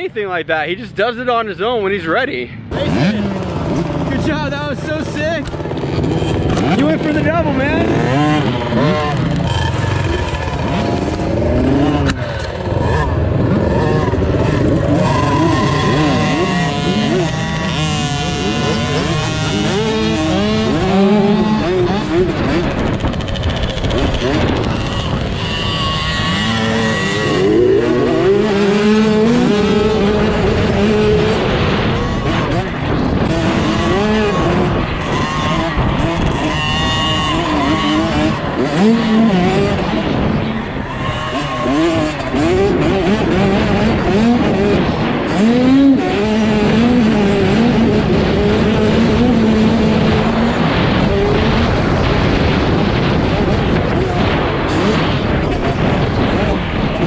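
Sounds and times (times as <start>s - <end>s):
dirt bike engine revving: 0.0s - 57.0s
mini dirt bikes running: 0.0s - 57.0s.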